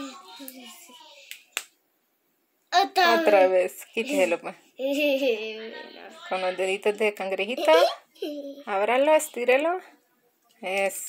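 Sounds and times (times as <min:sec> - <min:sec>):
woman speaking: 0:03.1 - 0:04.6, 0:05.6 - 0:08.0.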